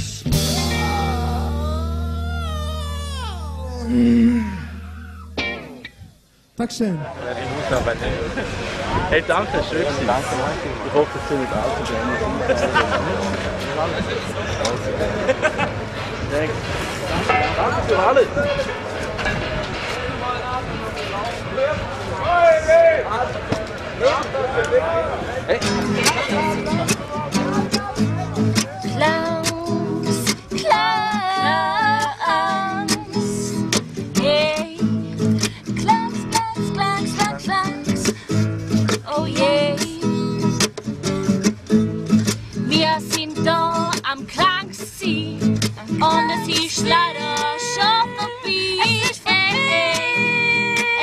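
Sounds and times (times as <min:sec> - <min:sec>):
strummed acoustic guitar: 0:00.0 - 0:02.2, 0:02.8 - 0:06.0, 0:25.6 - 0:51.0
woman singing: 0:00.5 - 0:04.7, 0:28.8 - 0:38.3, 0:39.0 - 0:40.6, 0:42.6 - 0:51.0
person calling out: 0:01.0 - 0:05.4.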